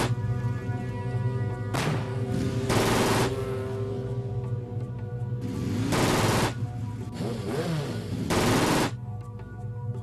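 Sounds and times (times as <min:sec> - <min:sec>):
automatic gunfire burst: 0:08.3 - 0:09.0.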